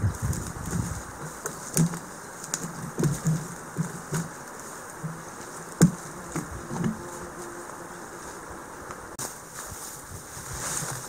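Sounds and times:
footsteps through undergrowth: 0:00.0 - 0:11.0
twigs snapping underfoot: 0:00.1 - 0:05.0.

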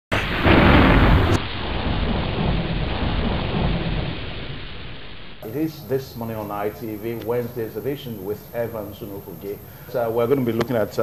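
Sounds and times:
heavy rain: 0:00.1 - 0:10.2
thunder rumble: 0:00.1 - 0:11.0.

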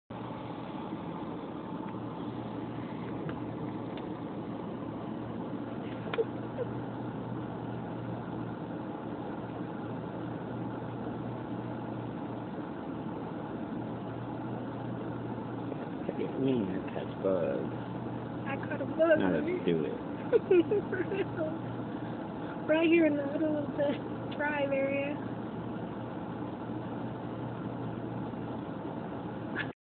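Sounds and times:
car engine idling: 0:00.1 - 0:29.8.

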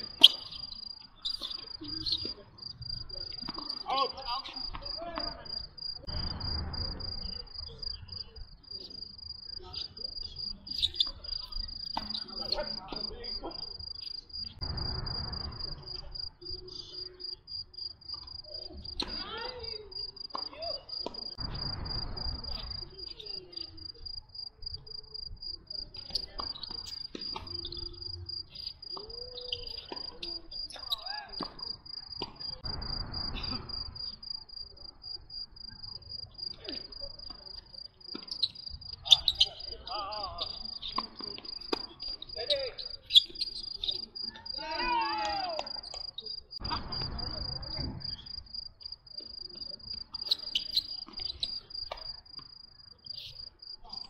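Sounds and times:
crickets chirping: 0:00.0 - 0:54.0.

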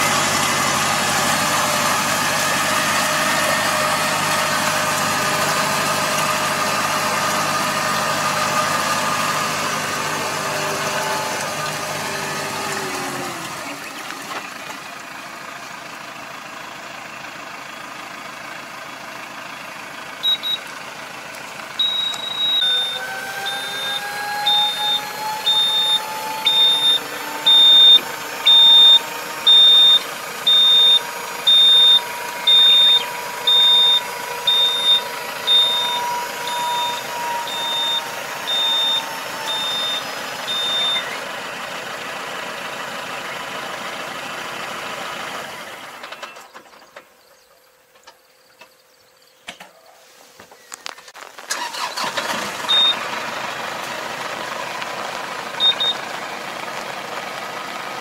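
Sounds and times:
tractor engine running: 0:00.0 - 0:48.7, 0:49.4 - 0:58.0
electronic warning buzzer beeping: 0:21.8 - 0:41.0
hydraulic whine: 0:21.8 - 0:41.2, 0:51.5 - 0:53.1.

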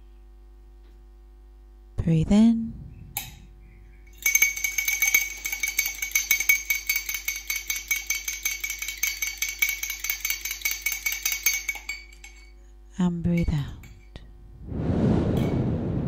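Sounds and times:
fork clinking against glass: 0:04.1 - 0:12.6.

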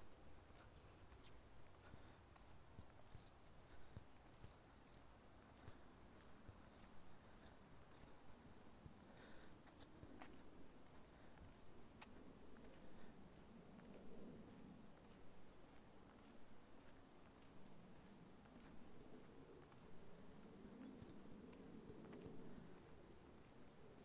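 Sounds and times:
insects trilling: 0:00.0 - 0:24.0.

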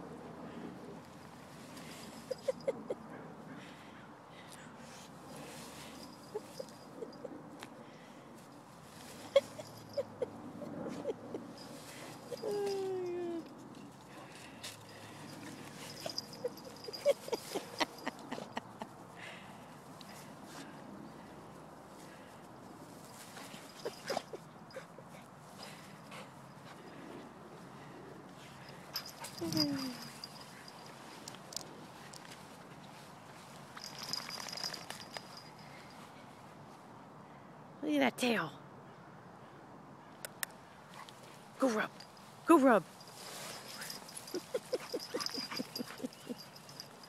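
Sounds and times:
leash clicks: 0:10.8 - 0:18.7, 0:28.4 - 0:32.4, 0:33.8 - 0:36.0, 0:43.0 - 0:47.0.

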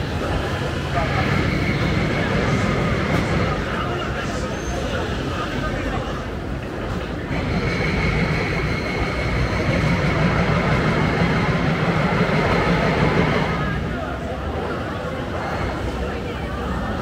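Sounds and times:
crowd chatter: 0:00.0 - 0:17.0
high whine of train: 0:00.0 - 0:17.0
train rumbling past: 0:00.0 - 0:17.0.

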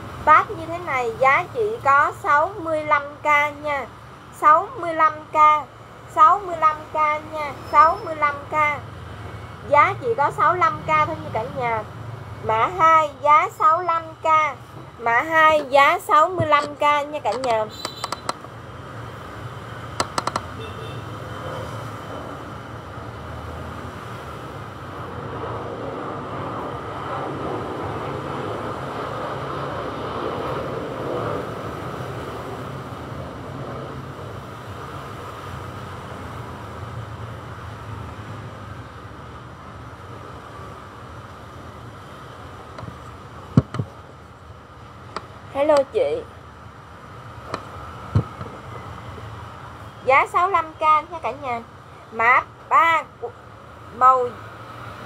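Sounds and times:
background rumble and hiss: 0:12.5 - 0:19.3
sharp clicks: 0:16.6 - 0:18.6, 0:20.0 - 0:20.5.

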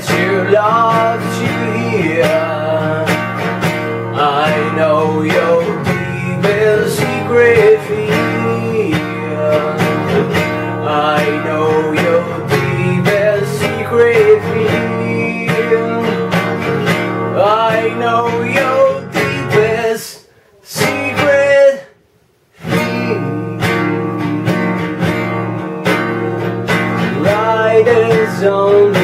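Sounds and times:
acoustic guitar strumming chords: 0:00.0 - 0:22.0, 0:22.6 - 0:29.0
man singing wordless notes: 0:00.0 - 0:22.0, 0:22.6 - 0:29.0.

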